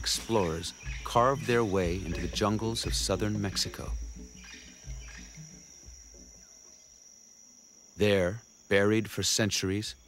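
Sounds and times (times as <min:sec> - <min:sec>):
soft low music notes: 0:00.0 - 0:07.0
high-pitched insect drone: 0:00.0 - 0:10.0.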